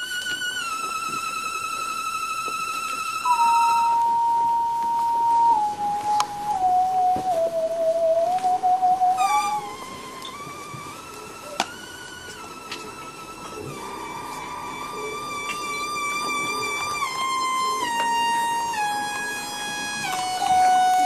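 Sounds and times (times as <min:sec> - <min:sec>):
wavering electronic tone with vibrato: 0:00.0 - 0:21.0.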